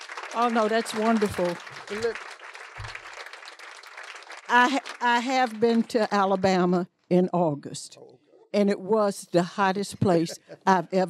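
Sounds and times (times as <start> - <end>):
audience applauding: 0.0 - 6.3.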